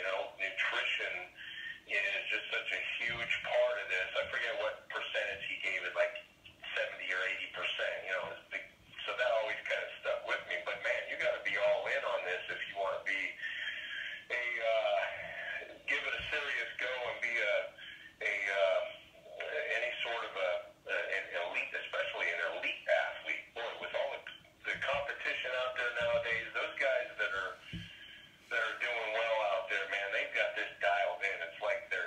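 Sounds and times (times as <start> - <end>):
person talking in tinny voice: 0.0 - 32.0.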